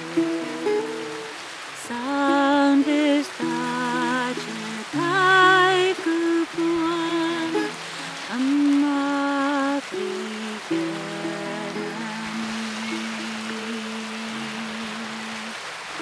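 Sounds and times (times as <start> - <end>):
acoustic guitar: 0.0 - 15.6
background wash of noise: 0.0 - 16.0
woman singing: 0.0 - 16.0.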